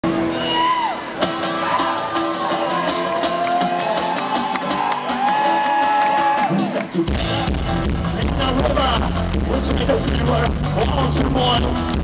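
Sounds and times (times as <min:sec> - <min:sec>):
live band music: 0:00.0 - 0:12.0
drums and cymbals beat: 0:07.1 - 0:12.0.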